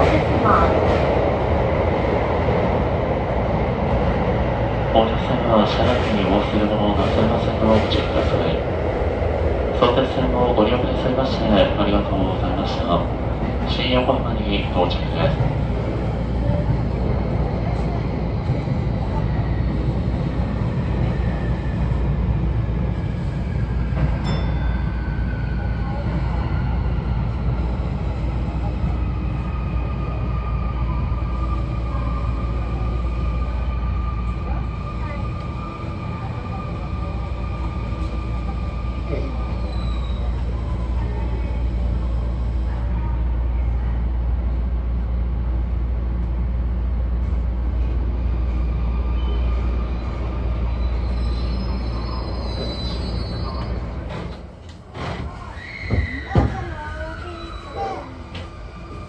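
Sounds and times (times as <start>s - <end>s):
train rumble: 0.0s - 59.0s.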